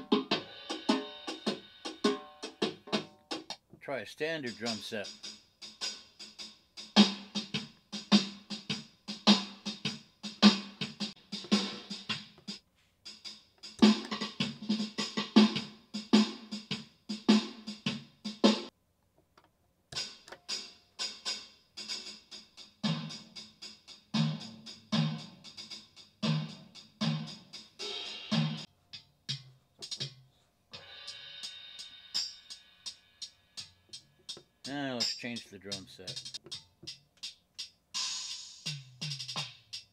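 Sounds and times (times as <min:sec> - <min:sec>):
drum machine beats: 0:00.0 - 0:03.7, 0:04.4 - 0:18.7, 0:20.0 - 0:39.9.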